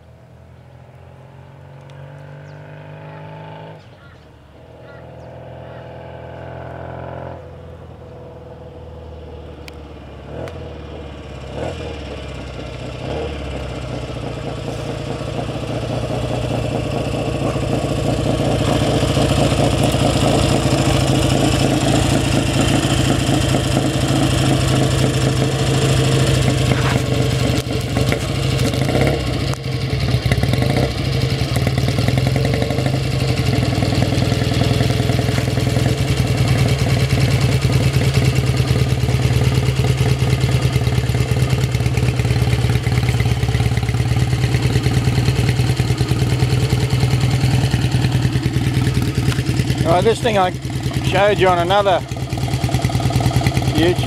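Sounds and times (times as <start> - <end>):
motorcycle engine idling: 9.4 - 54.0.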